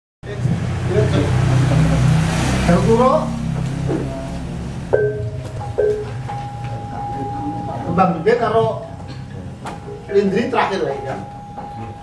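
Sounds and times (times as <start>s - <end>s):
loud low hum: 0.2s - 12.0s.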